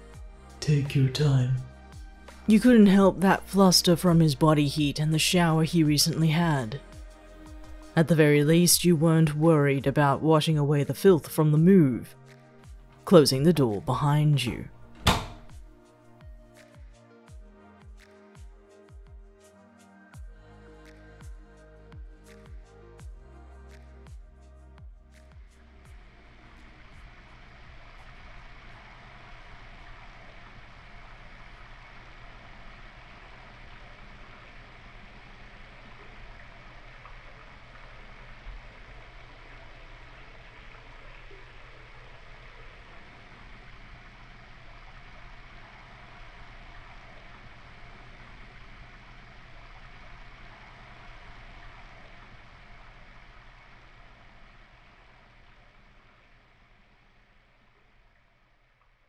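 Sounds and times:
shower running: 25.9 - 58.3.

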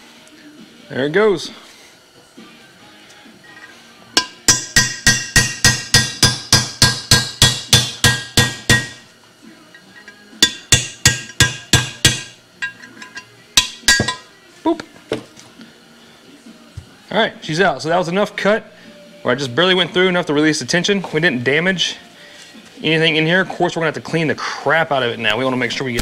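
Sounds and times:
hammer striking metal chisel: 4.2 - 9.0, 10.4 - 14.3.

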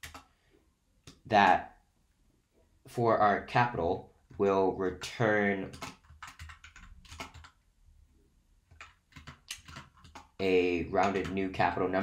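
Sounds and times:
keyboard typing: 0.0 - 0.4, 5.6 - 7.6, 8.7 - 12.0.

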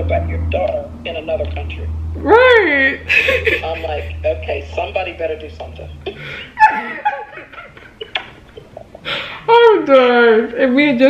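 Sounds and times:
woman giggling muffled: 3.1 - 4.2, 6.1 - 7.4.

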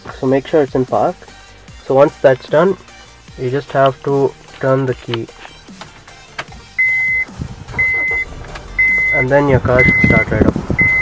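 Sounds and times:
car engine starting and idling: 2.7 - 11.0
dashboard warning chime beeping: 6.8 - 11.0.

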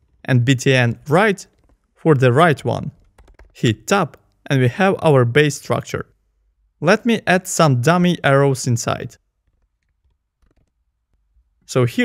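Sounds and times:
computer keyboard clicks: 3.0 - 4.3, 9.4 - 10.8.

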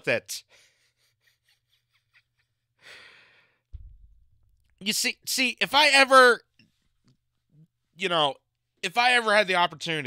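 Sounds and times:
dull low thump: 3.7 - 4.5
man speaking: 4.8 - 6.4.

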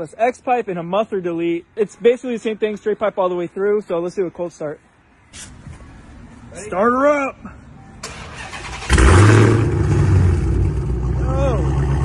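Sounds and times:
car engine starting and idling: 8.0 - 12.0.

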